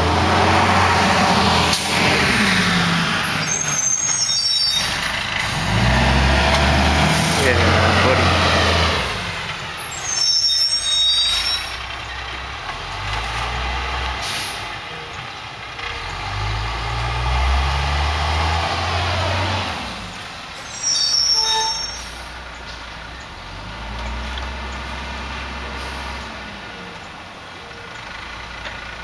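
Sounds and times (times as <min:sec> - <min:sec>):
air brakes hissing squeal: 0:03.2 - 0:05.1, 0:09.8 - 0:11.9, 0:14.2 - 0:14.7, 0:20.4 - 0:22.4
truck diesel engine running: 0:05.0 - 0:10.0, 0:22.1 - 0:29.0.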